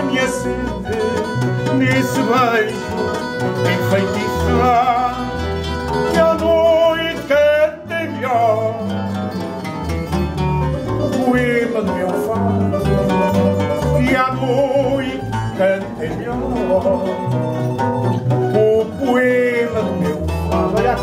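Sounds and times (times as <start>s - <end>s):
picked guitar melody: 0.0s - 21.0s
strummed classical guitar: 0.0s - 21.0s
walking electric bass line: 0.0s - 21.0s.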